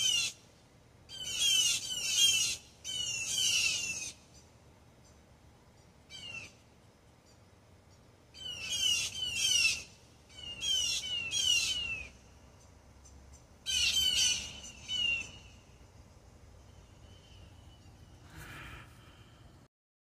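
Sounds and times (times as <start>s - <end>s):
blue jays harsh alarm calls: 0.0s - 0.4s, 1.1s - 4.4s, 6.1s - 6.6s, 8.3s - 12.3s, 13.6s - 15.7s.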